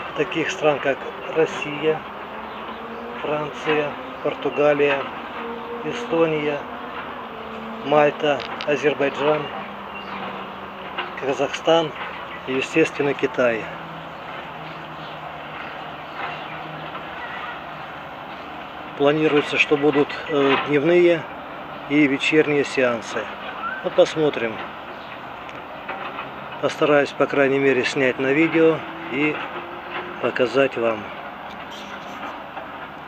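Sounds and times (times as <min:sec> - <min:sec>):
distant city hum: 0:00.0 - 0:33.0
distant traffic: 0:00.0 - 0:33.0.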